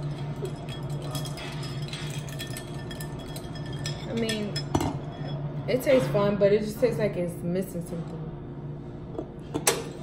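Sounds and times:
spoon clinking against glass: 0:00.0 - 0:05.4
steady low hum: 0:00.0 - 0:10.0.

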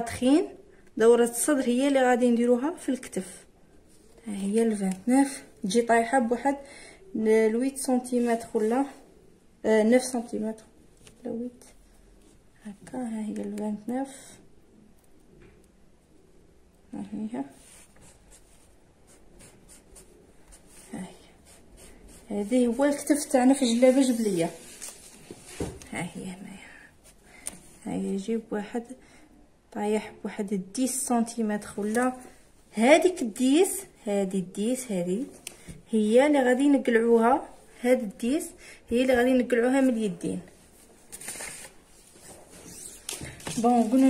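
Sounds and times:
chalk scratching on fabric: 0:17.5 - 0:23.0
paper and fabric rustling: 0:17.5 - 0:26.1, 0:39.6 - 0:44.0.

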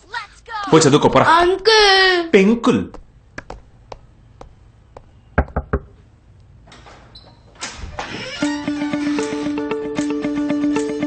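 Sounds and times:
knuckles knocking on wooden door: 0:03.0 - 0:06.0.

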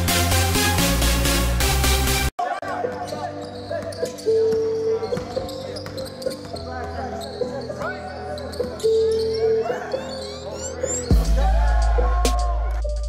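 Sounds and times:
players calling out: 0:02.5 - 0:13.0
sneaker squeaks: 0:02.7 - 0:11.2.

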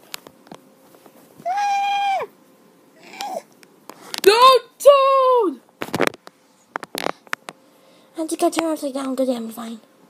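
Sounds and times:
child crying out: 0:01.4 - 0:02.3, 0:03.0 - 0:03.5.

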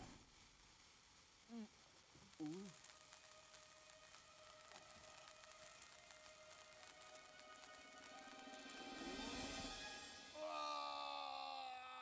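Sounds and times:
dynamite fuse fizzing: 0:00.0 - 0:10.4.

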